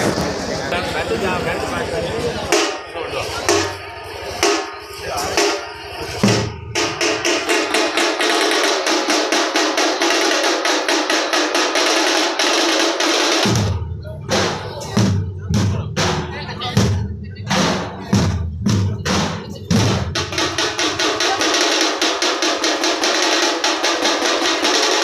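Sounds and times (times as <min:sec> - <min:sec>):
crowd voices: 0:00.0 - 0:25.0
drum roll of sharp beats: 0:00.0 - 0:25.0.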